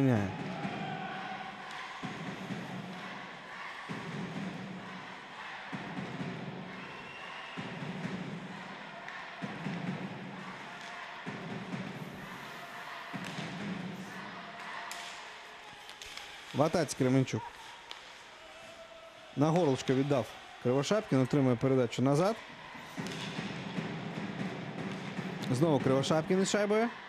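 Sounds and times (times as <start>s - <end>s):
hiss of crowd: 10.1s - 19.5s.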